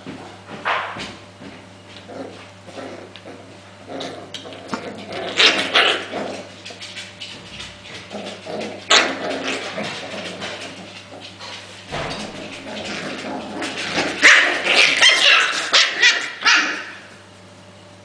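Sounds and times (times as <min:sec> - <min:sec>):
puppies scuffling: 0:04.4 - 0:17.1
puppies yipping and barking: 0:13.6 - 0:17.2.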